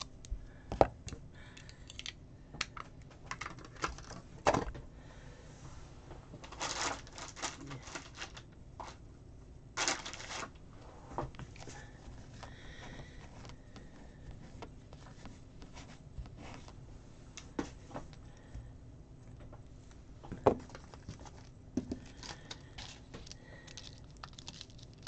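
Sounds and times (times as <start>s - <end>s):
rustling scrapes: 5.6s - 9.0s, 9.8s - 12.3s.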